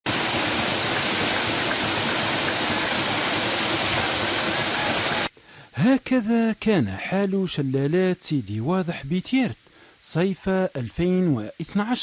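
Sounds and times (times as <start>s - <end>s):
waterfall rushing: 0.1s - 5.3s.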